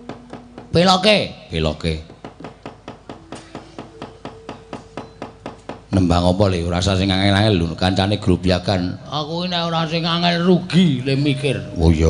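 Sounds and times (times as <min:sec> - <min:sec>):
wooden mallet knocking on wood: 0:00.0 - 0:01.1, 0:02.0 - 0:06.0.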